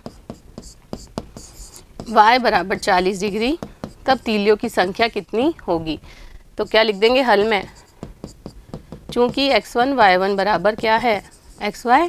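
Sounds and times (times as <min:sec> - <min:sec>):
chalk tapping on board: 0:00.0 - 0:05.2, 0:06.6 - 0:12.0
chalk scratching on board: 0:00.0 - 0:05.3, 0:06.6 - 0:12.0.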